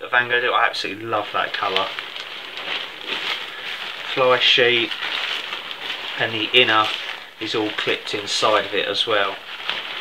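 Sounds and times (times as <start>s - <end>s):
tent fabric rustling and crinkling: 0.1s - 10.0s.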